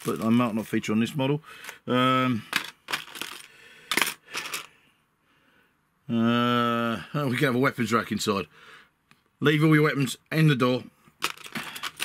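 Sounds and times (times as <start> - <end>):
plastic pieces clicking and clattering: 2.5 - 4.7, 11.2 - 12.0.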